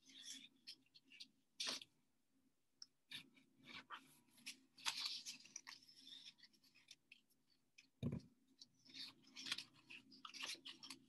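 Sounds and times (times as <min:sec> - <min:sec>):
paper rustling and crackling: 0:03.6 - 0:07.1.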